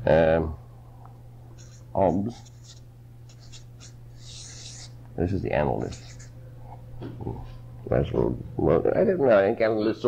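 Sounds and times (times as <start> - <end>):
low tape hum: 0.0 - 10.0
pen scratching on paper: 1.6 - 4.9, 5.8 - 6.3.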